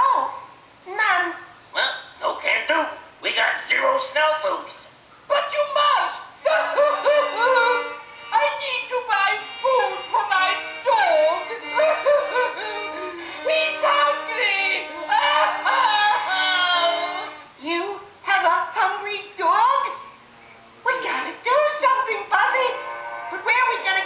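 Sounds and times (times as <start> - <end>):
cartoon song through speakers: 6.4 - 17.4.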